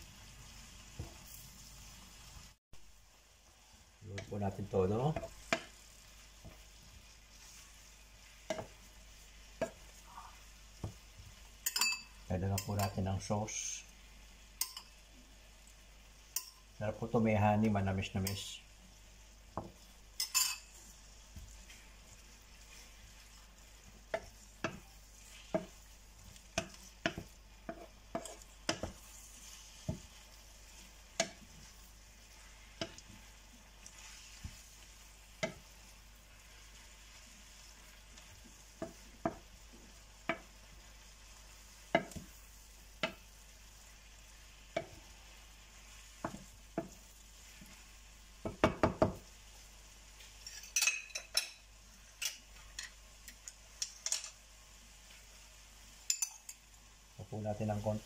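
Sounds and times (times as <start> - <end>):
faint sizzle: 0.0 - 58.0
spatula knocking and scraping a pan: 0.9 - 1.3, 4.2 - 13.1, 19.5 - 36.0, 37.6 - 40.6, 41.8 - 42.4, 43.0 - 43.3, 44.7 - 45.2, 46.0 - 47.8, 48.4 - 49.3.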